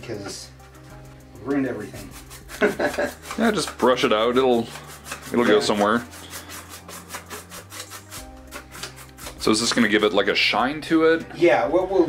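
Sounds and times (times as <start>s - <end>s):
paintbrush scratchy strokes: 1.7s - 9.9s.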